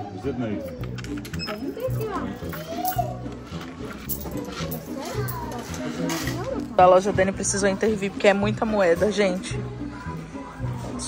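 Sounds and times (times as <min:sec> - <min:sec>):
background music with low notes: 0:00.0 - 0:11.0
child's voice: 0:04.8 - 0:05.7.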